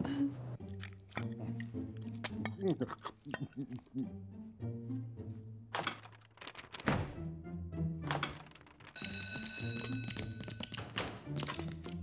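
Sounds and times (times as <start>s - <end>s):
high ringing tone: 9.0s - 10.2s.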